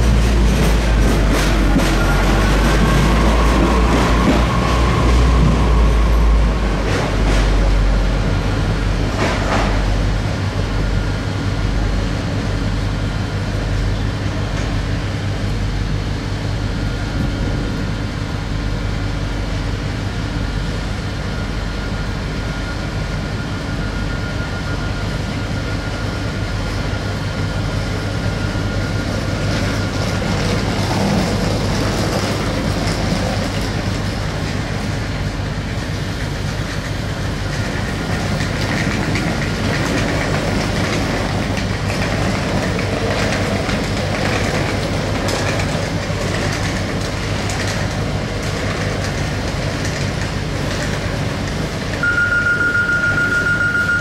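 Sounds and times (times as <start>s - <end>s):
train wheels clattering over rail joints: 0.0s - 5.7s, 29.4s - 52.0s
train engines humming: 0.0s - 54.0s.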